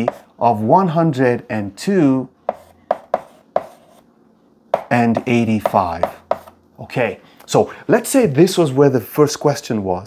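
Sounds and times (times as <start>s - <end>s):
chalk scratching: 0.0s - 0.3s, 2.4s - 4.1s, 4.8s - 6.6s
chalk tapping on blackboard: 0.0s - 0.3s, 2.4s - 4.0s, 4.7s - 6.6s.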